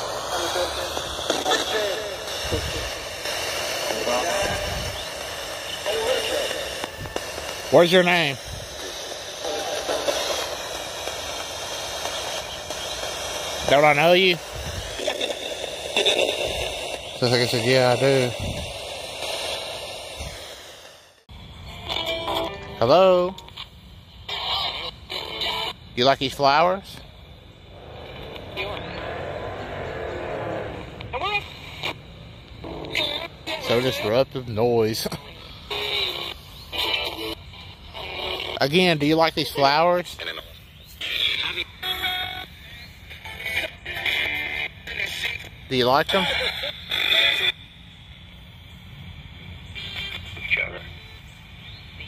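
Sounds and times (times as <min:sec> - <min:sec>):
choppy voice fragments: 0:00.0 - 0:20.5
radio static hiss: 0:00.0 - 0:52.0
vehicle passing by: 0:27.7 - 0:31.2.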